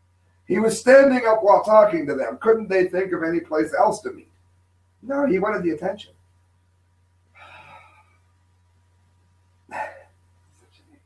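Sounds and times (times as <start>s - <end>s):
man's breathy sigh: 7.4s - 8.0s, 9.7s - 10.0s.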